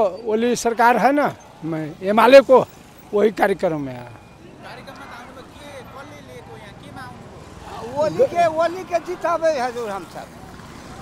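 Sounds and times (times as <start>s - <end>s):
man speaking: 0.0s - 10.4s
street traffic: 0.0s - 11.0s.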